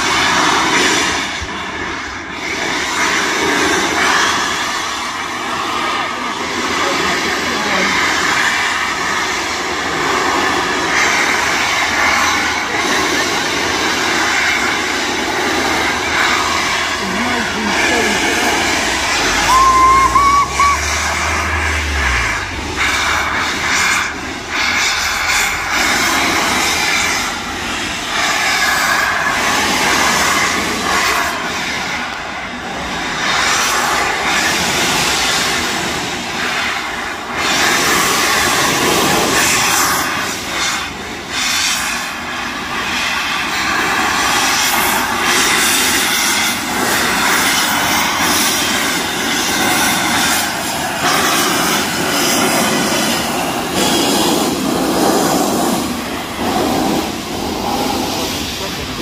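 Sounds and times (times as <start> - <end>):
steam locomotive exhaust: 0.0 - 59.0
train coaches rolling on rails: 0.0 - 59.0.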